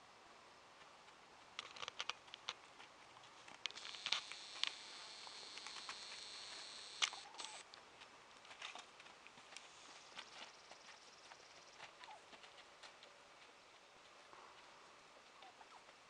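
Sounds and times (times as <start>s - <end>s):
hooves stepping on sandy dirt: 0.7s - 16.0s
faint high hiss: 3.7s - 7.7s.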